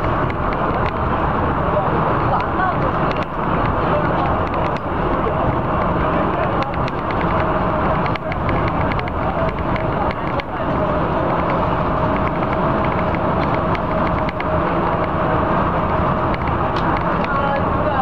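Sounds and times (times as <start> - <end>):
bus engine and road noise: 0.0 - 18.0
light rattling clicks: 2.4 - 10.6, 11.3 - 15.2.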